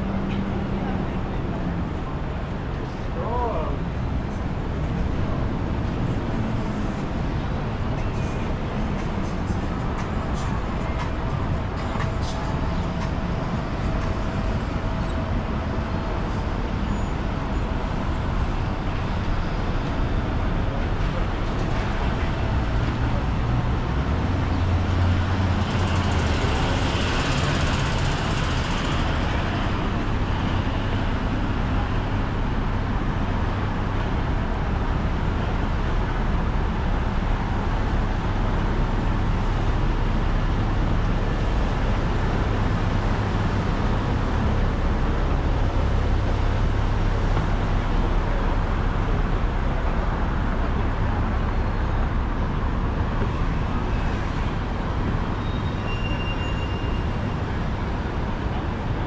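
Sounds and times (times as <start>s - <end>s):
road traffic rumble: 0.0s - 59.0s.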